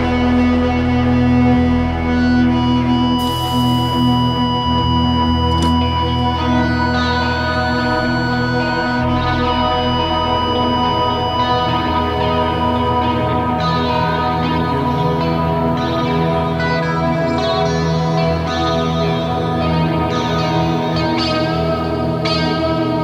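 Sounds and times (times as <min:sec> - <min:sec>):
electric guitars droning: 0:00.0 - 0:23.0
low bass notes: 0:00.0 - 0:23.0.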